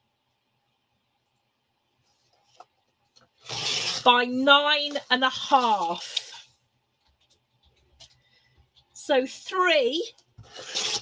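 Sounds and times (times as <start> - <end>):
paper trimmer rasping slide: 3.4 - 4.1, 10.4 - 11.0.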